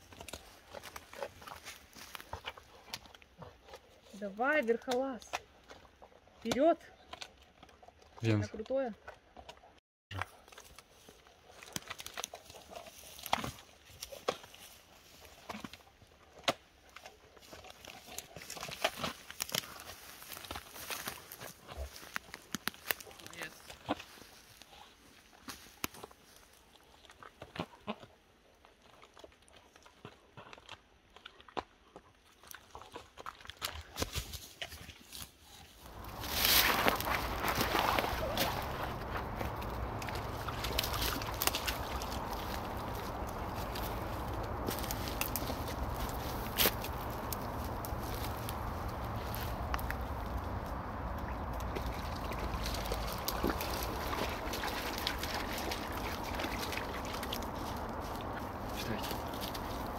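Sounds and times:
rushing outdoor noise with rumble: 35.8s - 59.9s.

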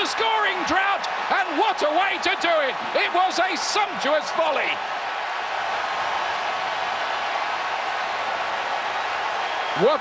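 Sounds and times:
stadium crowd cheering and clapping: 0.0s - 10.0s.

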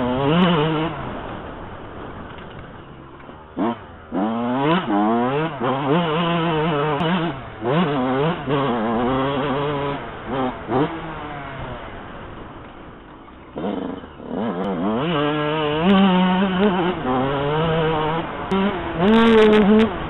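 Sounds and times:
motocross engine revving: 0.0s - 2.6s, 3.4s - 20.0s.

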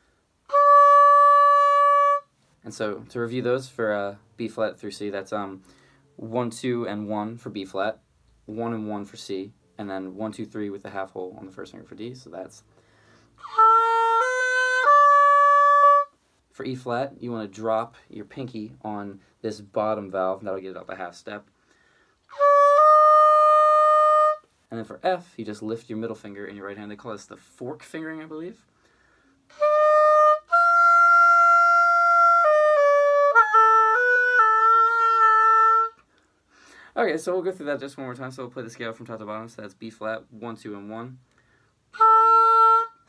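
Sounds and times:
oboe playing ascending notes: 0.5s - 2.3s, 13.4s - 16.2s, 22.3s - 24.5s, 29.5s - 36.0s, 42.0s - 43.0s.

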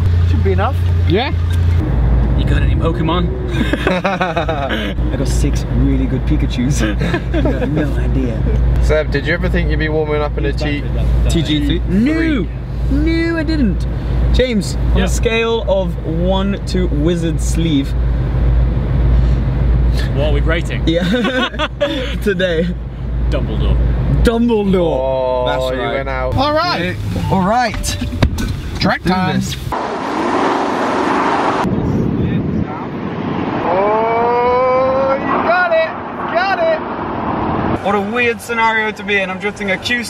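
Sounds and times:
car engine idling: 0.0s - 25.0s
snow spray and tyre noise: 26.4s - 40.0s
car engine revving hard: 29.6s - 31.7s
people whooping: 33.6s - 35.3s.

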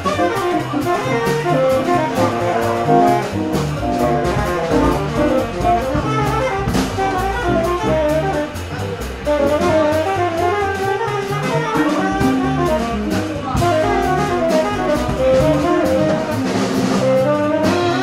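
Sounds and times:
drums with cymbal strokes: 0.0s - 18.0s
plucked upright bass: 0.0s - 18.0s
tenor saxophone melody: 0.0s - 18.0s.

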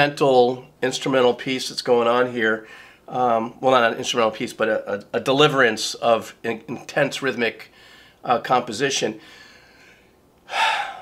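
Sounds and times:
man speaking: 0.0s - 9.2s
man's quick intake of breath: 9.2s - 11.0s.

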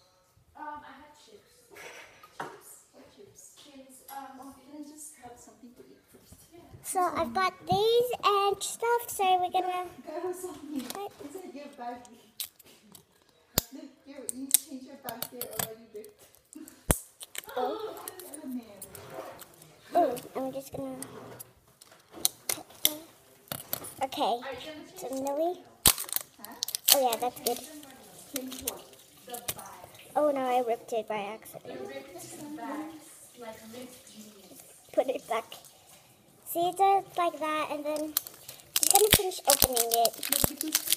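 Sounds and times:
girl speaking softly: 6.8s - 11.4s, 17.5s - 18.5s, 19.9s - 21.1s, 36.5s - 38.2s
plastic snap: 14.3s - 15.7s
plastic wrapping crinkling: 16.1s - 20.7s, 25.0s - 30.8s, 34.6s - 40.9s.

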